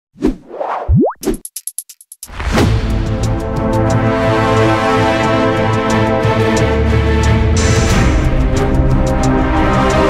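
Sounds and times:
quick rising tone: 0.2s - 1.4s.

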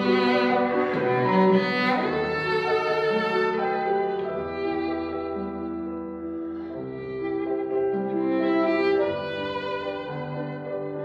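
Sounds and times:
cello: 0.0s - 11.0s
grand piano: 0.0s - 11.0s.

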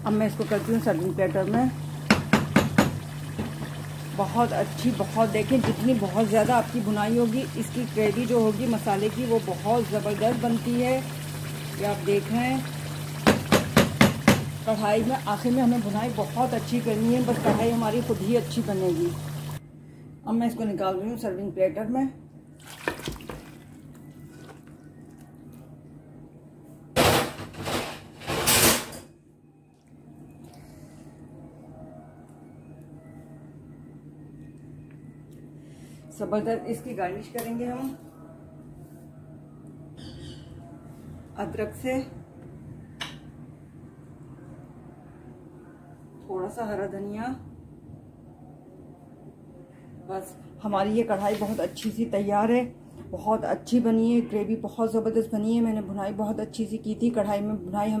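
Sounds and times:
spoon knocking against pan: 2.0s - 3.6s, 13.2s - 14.5s.

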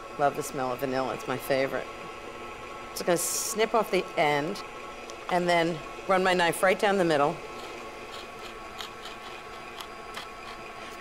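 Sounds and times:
knife tip scratching on wood: 7.5s - 11.0s.

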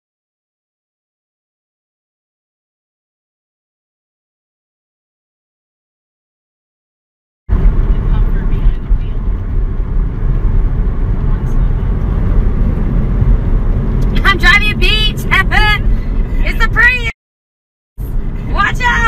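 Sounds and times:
road and wind noise in car: 7.5s - 17.1s, 18.0s - 19.0s
voice with rising and falling sounds: 14.0s - 17.1s, 18.1s - 19.0s.

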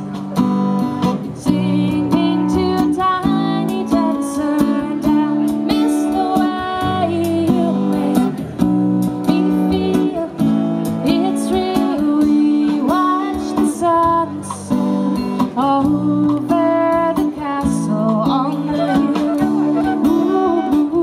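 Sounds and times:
acoustic guitar strumming: 0.0s - 21.0s
woman singing: 1.2s - 8.5s, 9.1s - 21.0s.

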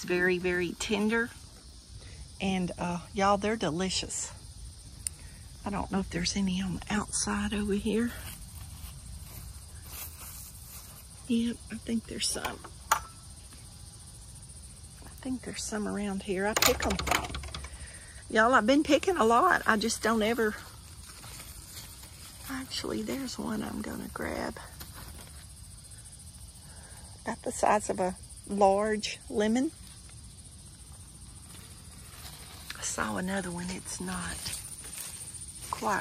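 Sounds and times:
insects chirring: 0.0s - 36.0s
leaves rustling: 6.9s - 11.8s, 19.2s - 26.9s, 29.7s - 36.0s.

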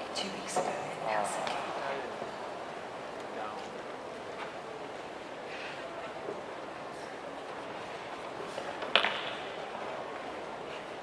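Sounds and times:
crowded indoor arena noise: 0.0s - 11.0s.

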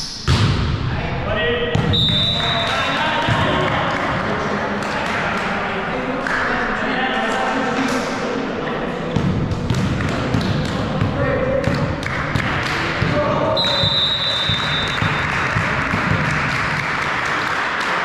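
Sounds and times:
referee's whistle: 1.8s - 2.8s, 13.6s - 15.3s
players calling out: 9.8s - 16.1s.

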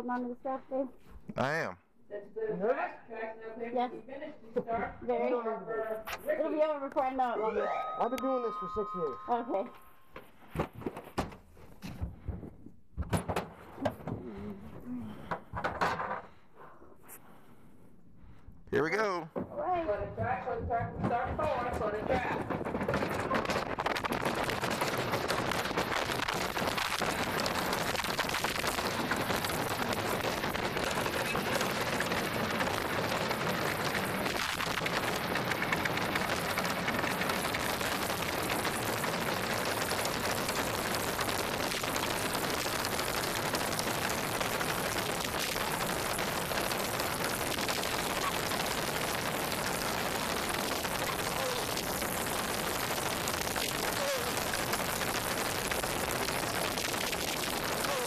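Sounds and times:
sled runners rumbling on ice: 19.8s - 58.0s.

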